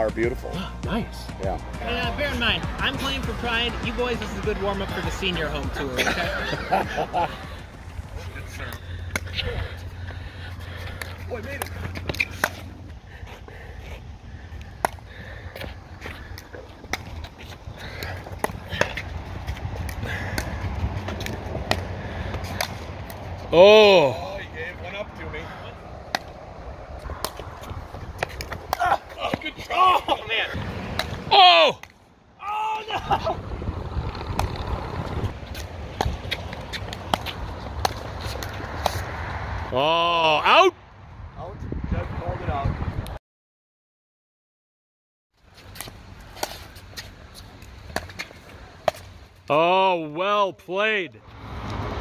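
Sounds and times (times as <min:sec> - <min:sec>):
ball bouncing on hard court: 0:35.5 - 0:39.0.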